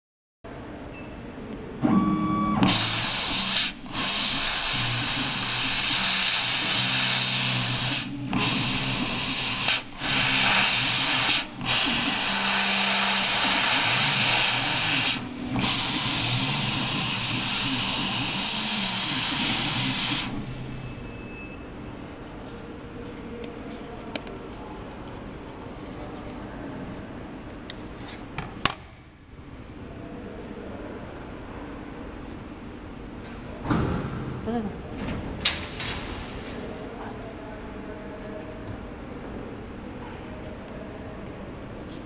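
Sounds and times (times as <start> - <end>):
short tone: 1.8 - 2.8, 20.6 - 22.1
air hissing through laser nozzle: 2.6 - 20.5.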